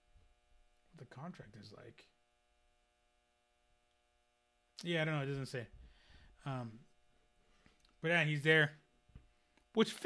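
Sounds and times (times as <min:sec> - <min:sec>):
faint electrical hum: 0:00.0 - 0:10.0
man speaking: 0:00.9 - 0:02.2, 0:06.4 - 0:06.9, 0:09.7 - 0:10.0.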